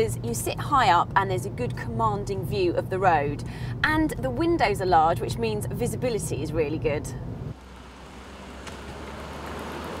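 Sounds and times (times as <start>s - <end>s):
car engine: 5.9s - 10.0s.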